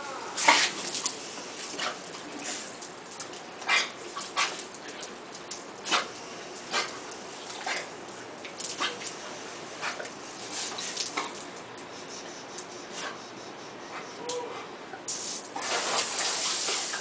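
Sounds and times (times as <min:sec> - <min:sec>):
garden hose spraying: 0:00.3 - 0:11.8, 0:15.1 - 0:17.0.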